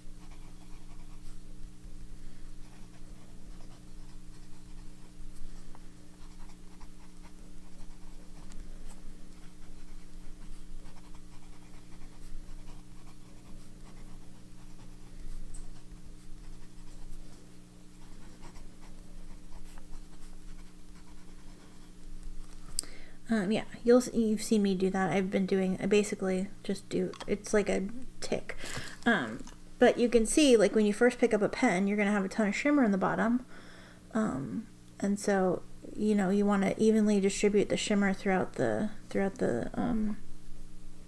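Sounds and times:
steady low hum: 0.0 - 41.0
fountain pen scratching on paper: 0.2 - 1.4, 2.6 - 21.9.

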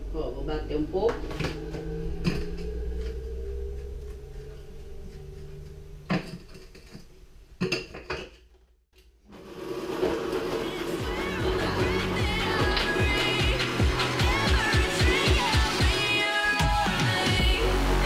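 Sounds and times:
low hum: 0.0 - 8.8
background music: 9.7 - 18.0.

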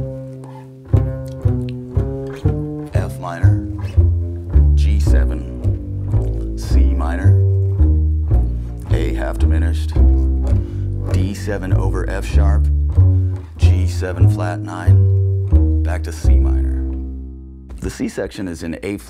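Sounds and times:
double bass plucked notes: 0.0 - 18.2.

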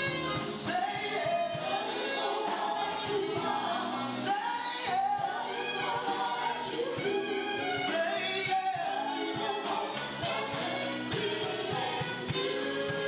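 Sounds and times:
choir singing: 0.0 - 13.0
instrumental accompaniment: 0.0 - 13.0.

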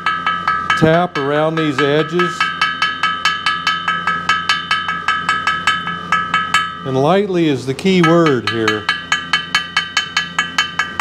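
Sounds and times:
hammer tapping on metal: 0.0 - 11.0
metal cylinder ringing: 0.0 - 11.0.

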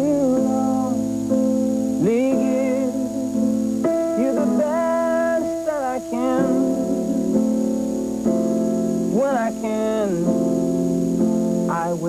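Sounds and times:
man singing wordless vibrato phrases: 0.0 - 1.4, 2.0 - 8.3, 9.0 - 12.0
sustained keyboard chords: 0.0 - 12.0.

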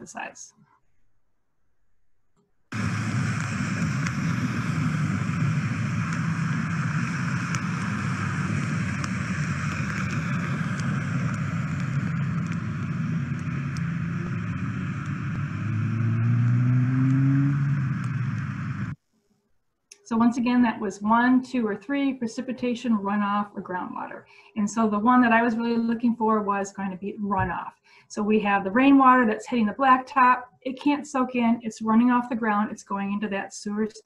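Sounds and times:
rainwater rushing into storm drain: 2.8 - 18.2
passing vehicle engine: 6.3 - 19.0.

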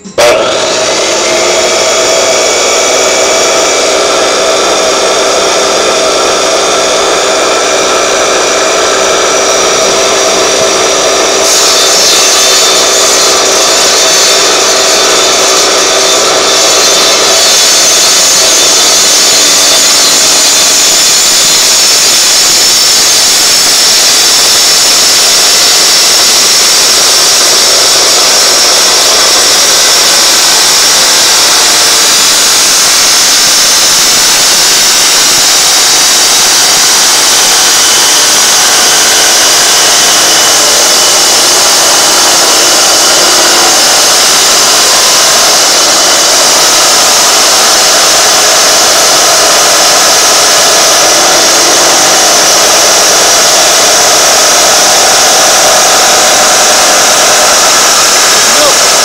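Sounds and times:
circular saw cutting shell: 0.0 - 59.0.

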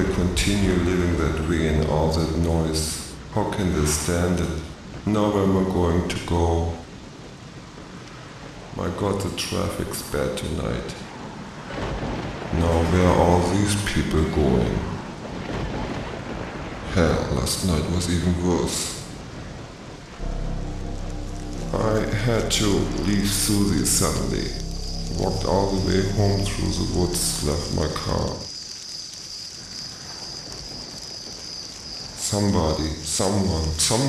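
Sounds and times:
faint low rumble: 0.0 - 6.8, 20.1 - 28.4
crickets chirring: 13.1 - 34.0.

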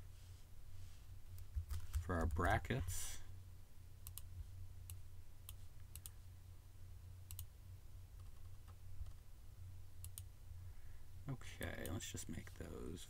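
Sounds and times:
low steady hum: 0.0 - 13.0
computer mouse clicks: 4.0 - 4.3, 4.9 - 6.2, 7.3 - 7.5, 10.0 - 10.3.

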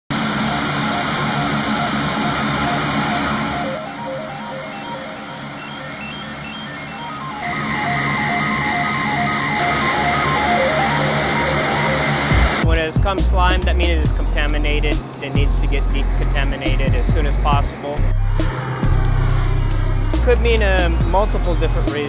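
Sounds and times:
turboprop engines running: 0.1 - 22.0
music of short repeated notes: 1.4 - 22.0.

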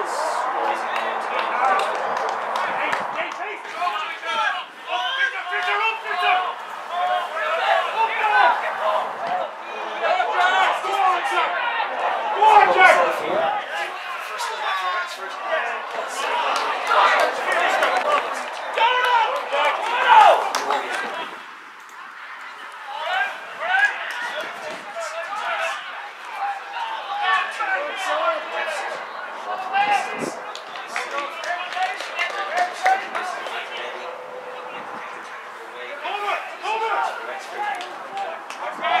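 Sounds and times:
players shouting: 0.0 - 39.0.

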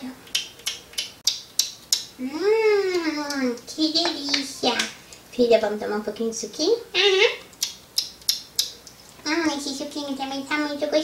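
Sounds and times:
wet smacking clicks: 0.3 - 2.1, 7.4 - 9.0.

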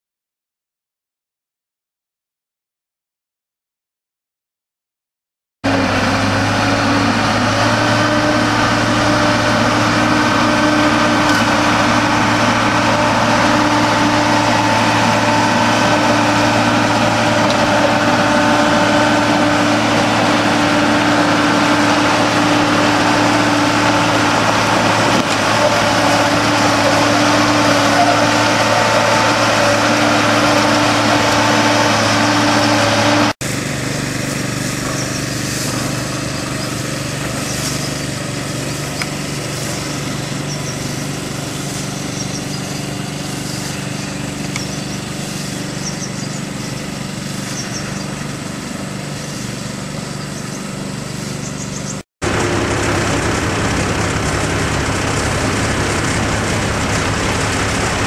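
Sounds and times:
diesel engine running under load: 5.7 - 58.0
scarifier ripping gravel: 33.4 - 50.0.

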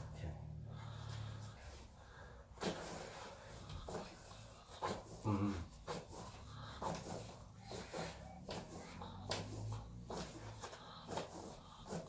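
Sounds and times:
person groaning: 5.2 - 5.7.

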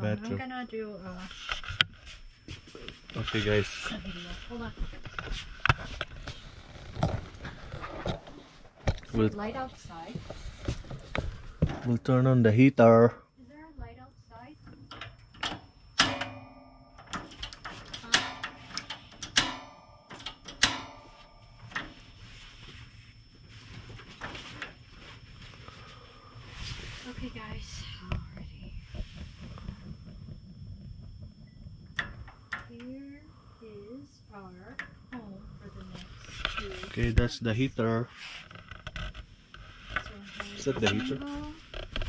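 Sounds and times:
igniter clicks and knocks: 14.8 - 22.0.

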